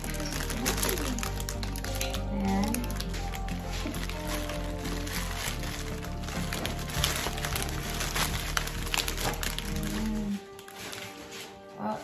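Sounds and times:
plastic packaging crinkling: 0.0s - 11.9s
background music: 0.0s - 12.0s.

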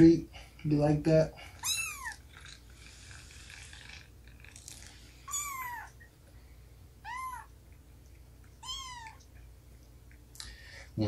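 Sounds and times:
cat meowing: 1.6s - 2.2s, 5.3s - 6.0s, 7.0s - 7.5s, 8.6s - 9.3s.

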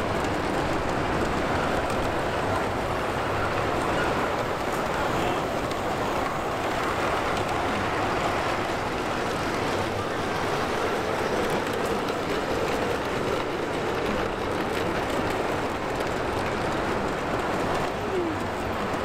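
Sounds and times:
model trains rumbling on track: 0.0s - 19.0s.

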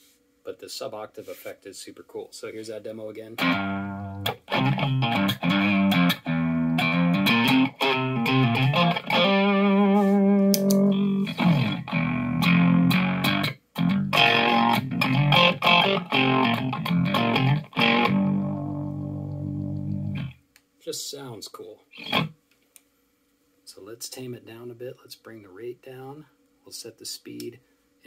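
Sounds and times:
electric guitar with fast tremolo: 3.4s - 20.3s, 22.0s - 22.3s.

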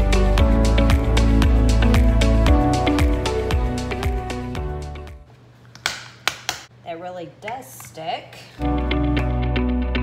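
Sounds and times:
wordless voice: 6.8s - 8.6s.

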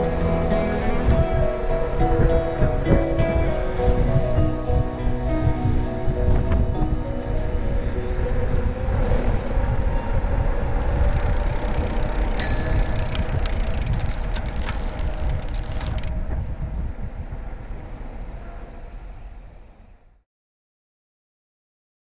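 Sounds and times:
hiss and clicks: 10.8s - 16.1s
bicycle bell ding: 10.9s - 14.8s.

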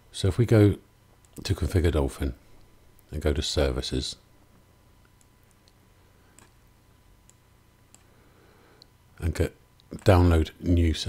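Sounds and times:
computer mouse clicks: 5.0s - 6.6s, 7.2s - 8.1s.

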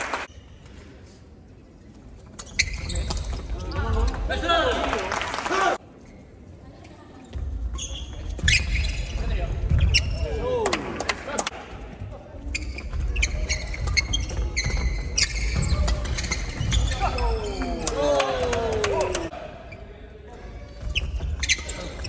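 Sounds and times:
shoes squeaking on floor: 2.3s - 4.2s, 7.2s - 10.4s, 12.4s - 17.9s, 20.5s - 22.0s.

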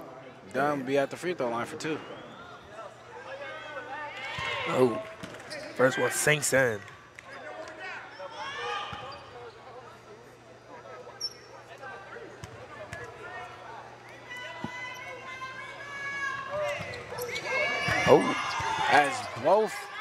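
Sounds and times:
voices in a gym: 0.0s - 20.0s.

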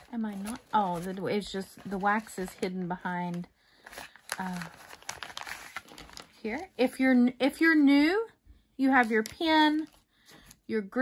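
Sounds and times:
plastic bags crinkling: 0.0s - 6.8s, 9.0s - 10.6s.

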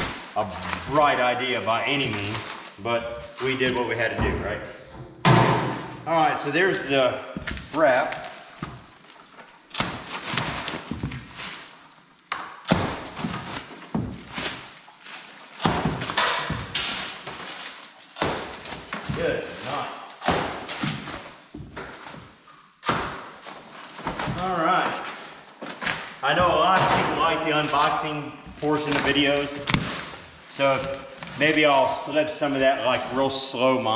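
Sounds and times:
packaging ripping and crinkling: 0.0s - 3.5s
man talking: 0.0s - 4.8s, 6.0s - 8.3s, 19.1s - 20.1s, 24.4s - 25.1s, 26.2s - 29.8s, 30.5s - 33.9s
boxes thudding: 12.3s - 33.2s.

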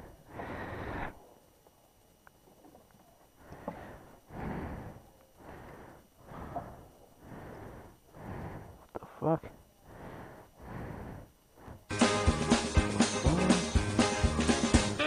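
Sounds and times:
breathing into microphone: 0.0s - 1.3s, 3.4s - 11.9s
faint clicks: 1.4s - 4.1s, 5.0s - 7.1s.

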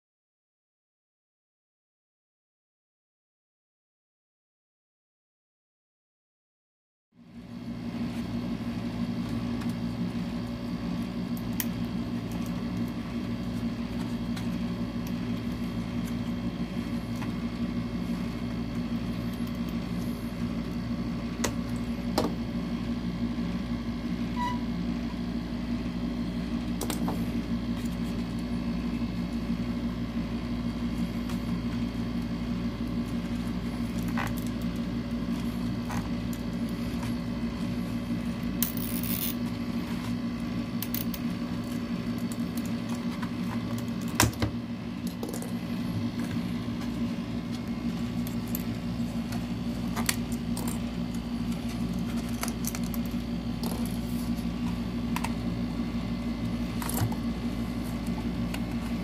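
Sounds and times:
steady low hum: 7.2s - 59.0s.

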